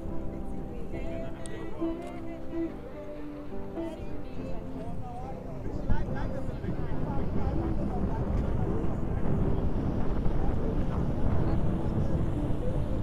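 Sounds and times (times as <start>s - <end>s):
faint murmur of voices: 0.0s - 13.0s.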